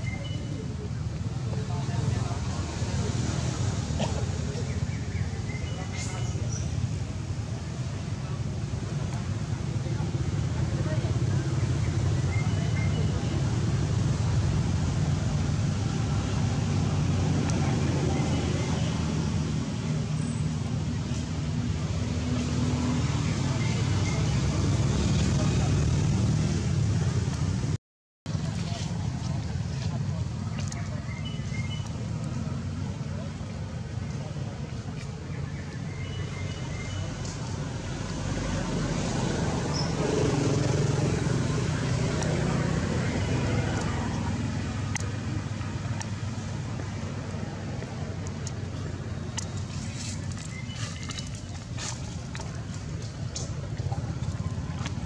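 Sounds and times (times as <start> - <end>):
traffic engine drone: 0.0 - 55.0.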